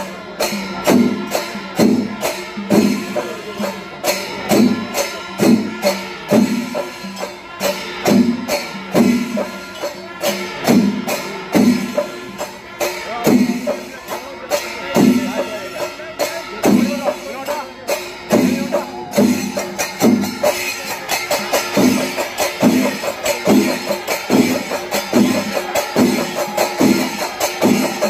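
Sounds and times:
drum beat: 0.0 - 28.0
jingling cymbal strokes: 0.0 - 28.0.

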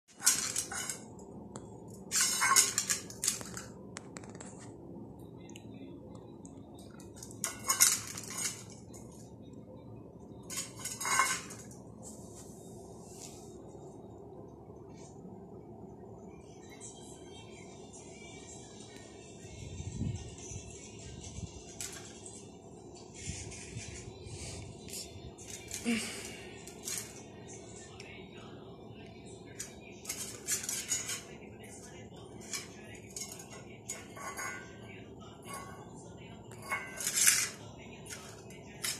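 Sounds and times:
metal bowl clattering on stone floor: 0.1 - 1.2, 2.0 - 3.7, 7.0 - 9.2, 10.4 - 11.8, 29.6 - 31.4, 32.3 - 38.9
metal bowl clinking on stone floor: 7.2 - 9.0, 10.4 - 11.8, 32.4 - 35.9.

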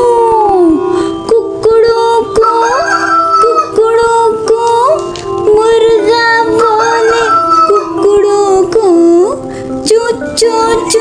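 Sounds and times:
nursery rhyme backing track: 0.0 - 11.0.

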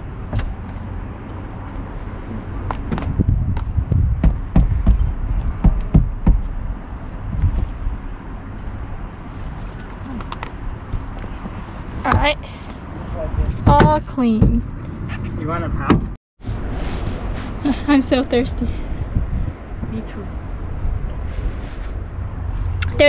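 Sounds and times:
low rumble: 2.2 - 9.4, 16.4 - 23.0
shoes knocking together: 2.6 - 6.5.

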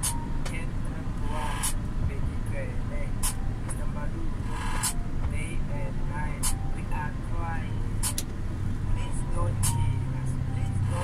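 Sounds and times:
truck engine drone: 0.0 - 11.0.

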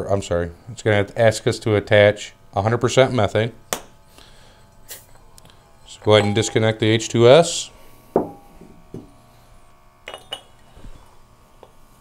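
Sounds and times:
metal clink with ring: 10.1 - 10.6.

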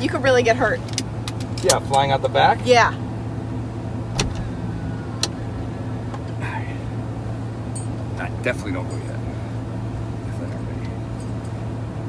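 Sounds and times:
low hum in car cabin: 0.0 - 12.0.

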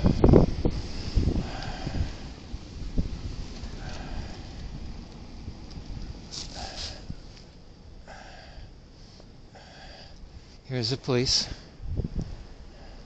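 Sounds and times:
wind on microphone: 0.0 - 7.4, 11.6 - 13.0
street traffic rumble: 0.0 - 13.0
short hiss-like sounds: 6.2 - 7.6.

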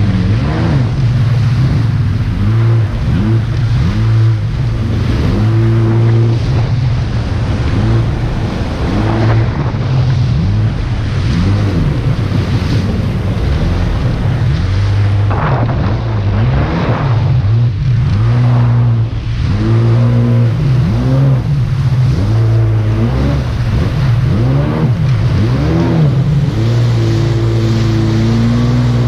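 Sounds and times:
jet ski engine: 0.0 - 29.0
water rushing: 0.0 - 29.0
wind on microphone: 0.0 - 29.0.

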